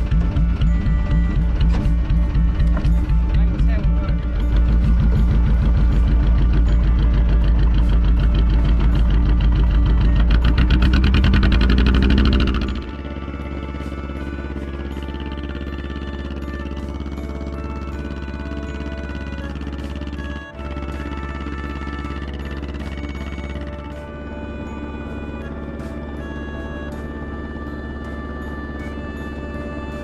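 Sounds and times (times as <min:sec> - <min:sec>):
background music with held notes: 0:00.0 - 0:30.0
boat engine running: 0:00.0 - 0:30.0.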